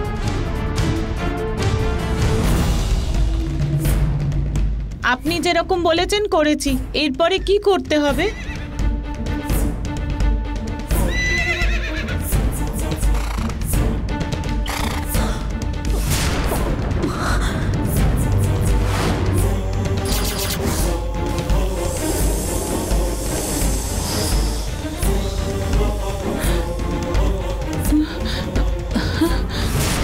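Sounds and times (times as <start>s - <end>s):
dramatic background music: 0.0s - 30.0s
horse whinnying: 8.2s - 8.7s, 11.0s - 12.1s, 14.6s - 15.1s.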